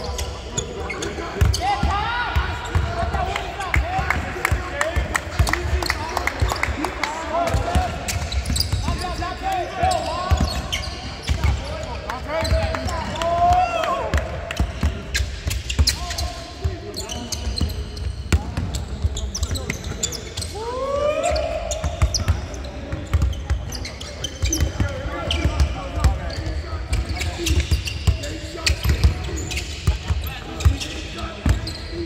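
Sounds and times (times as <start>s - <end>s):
sneaker squeaks: 0.0s - 3.8s, 7.5s - 13.2s, 14.6s - 32.0s.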